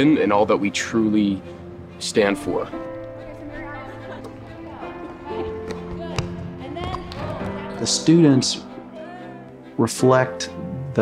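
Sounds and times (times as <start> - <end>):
man talking: 0.0 - 2.8, 7.8 - 8.7, 9.8 - 11.0
background music: 0.0 - 11.0
basketball bouncing on wooden floor: 5.6 - 7.7.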